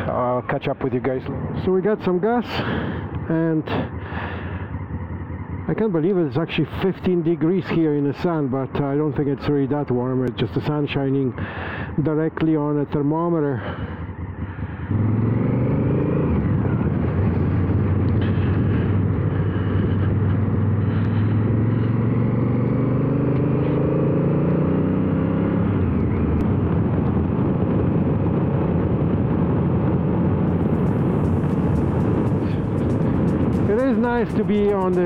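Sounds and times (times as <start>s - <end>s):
road noise: 0.0s - 35.0s
motorcycle engine accelerating: 1.2s - 7.2s, 13.6s - 35.0s
wind noise: 13.6s - 22.5s, 25.3s - 35.0s.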